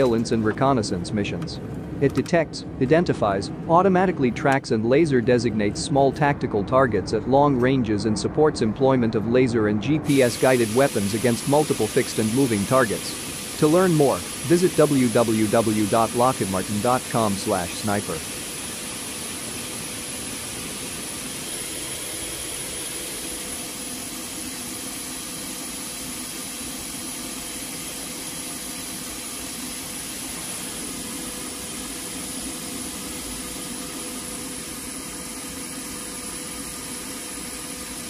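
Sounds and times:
jet turbine rush and whine: 0.0s - 38.0s.

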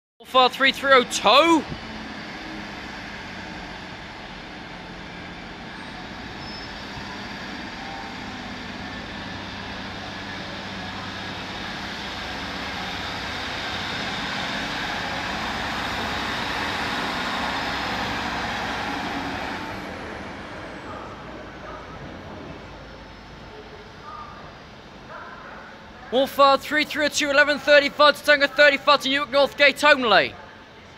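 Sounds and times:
diesel train passing: 0.4s - 30.9s.

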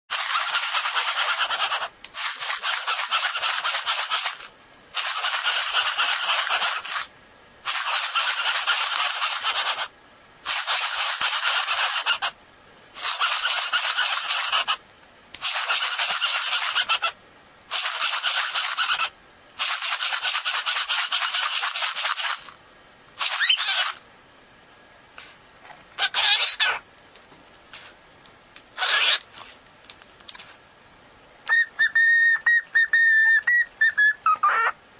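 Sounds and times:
cockatiel raspy chatter: 0.1s - 7.1s, 7.7s - 9.9s, 10.5s - 12.4s, 13.0s - 14.8s, 15.4s - 22.4s, 23.2s - 24.0s, 26.0s - 26.8s, 28.8s - 29.3s, 32.8s - 34.8s.

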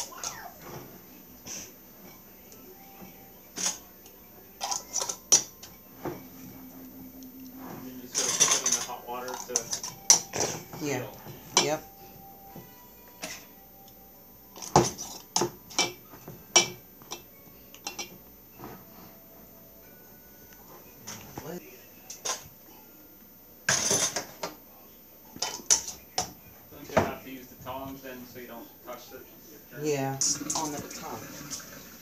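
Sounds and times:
glass jars clinking: 4.6s - 5.7s, 8.0s - 11.8s.

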